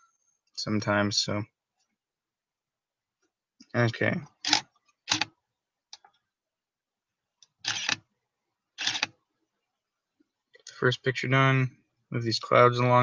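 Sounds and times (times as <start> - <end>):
camera shutter clattering: 4.5 - 5.2, 7.6 - 8.0, 8.8 - 9.1.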